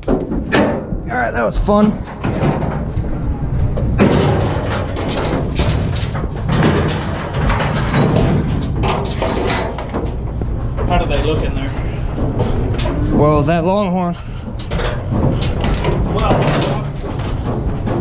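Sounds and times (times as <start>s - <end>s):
cattle clattering in metal trailer: 0.0s - 2.9s, 3.8s - 18.0s
steady low rumble: 0.0s - 18.0s.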